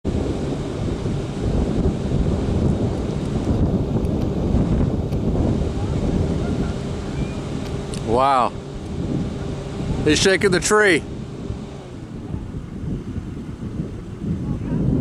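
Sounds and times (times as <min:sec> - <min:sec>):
wind buffeting microphone: 0:00.0 - 0:15.0
faint steady hum: 0:00.1 - 0:15.0.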